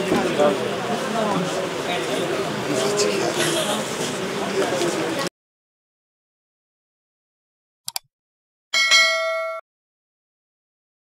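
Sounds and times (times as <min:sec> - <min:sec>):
bell-like ding chime: 0:08.8 - 0:09.6.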